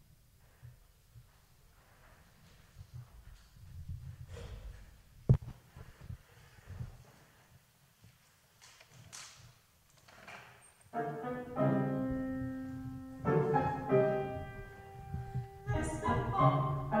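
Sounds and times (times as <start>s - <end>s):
piano chords: 10.9s - 17.0s.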